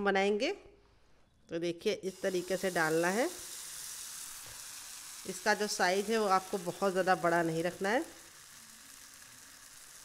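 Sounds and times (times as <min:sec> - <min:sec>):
batter sizzling in a pan: 0:02.0 - 0:10.0.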